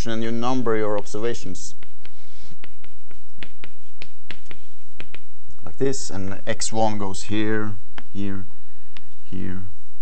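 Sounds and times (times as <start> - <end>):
chalk scratching on blackboard: 0.5 - 10.0
chalk ticks: 0.9 - 5.3.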